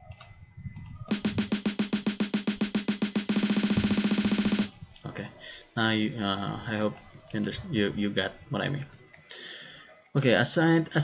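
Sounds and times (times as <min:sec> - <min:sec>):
electronic snare roll: 0:01.1 - 0:04.7.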